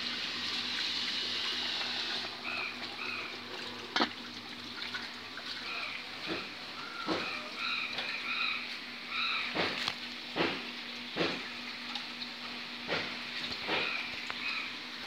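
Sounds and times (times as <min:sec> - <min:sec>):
running water hiss: 0:00.0 - 0:15.0.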